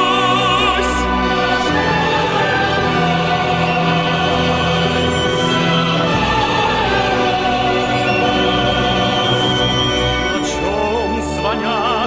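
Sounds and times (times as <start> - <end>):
choir holding a chord: 0.0 - 11.7.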